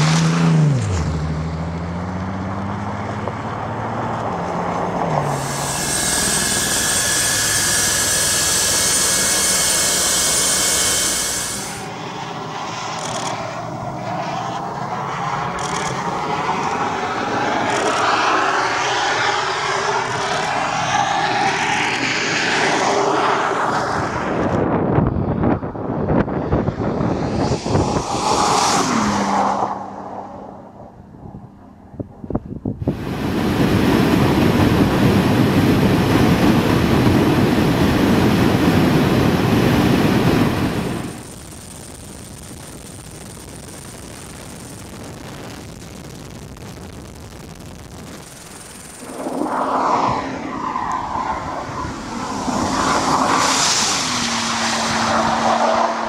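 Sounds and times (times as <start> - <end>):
car speeding past: 0.0 - 7.2, 26.2 - 31.4, 49.0 - 56.0
wind noise on microphone: 15.4 - 30.0, 30.8 - 56.0.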